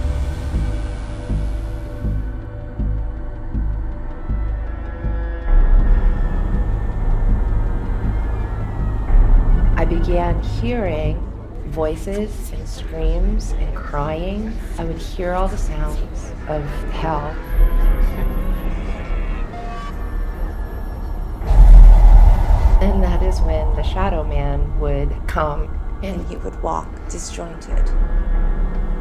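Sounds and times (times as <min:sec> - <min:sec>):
low rumbling drone score: 0:00.7 - 0:29.0
loud surge of hissing noise: 0:21.5 - 0:25.2.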